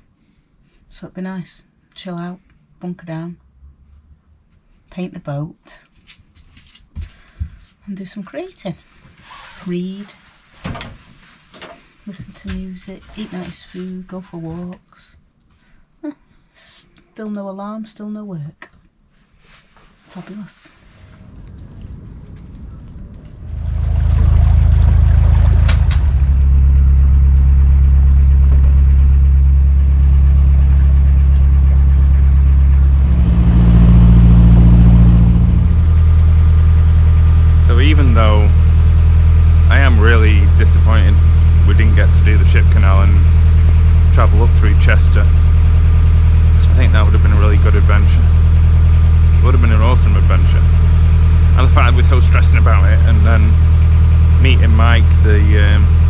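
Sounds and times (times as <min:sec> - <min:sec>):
boat engine droning: 0:20.8 - 0:56.0.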